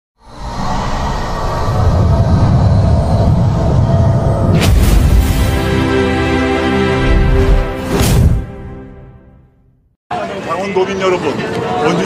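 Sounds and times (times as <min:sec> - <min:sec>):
cinematic music with rumbling drone: 0:00.2 - 0:09.5.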